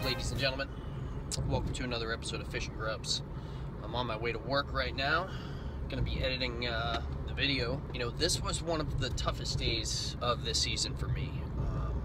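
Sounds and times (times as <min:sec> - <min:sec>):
man talking: 0:00.0 - 0:00.7
car road and engine noise: 0:00.0 - 0:12.0.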